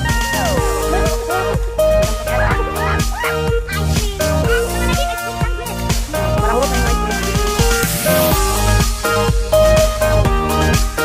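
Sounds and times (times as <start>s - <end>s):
electronic background music: 0.0s - 11.0s.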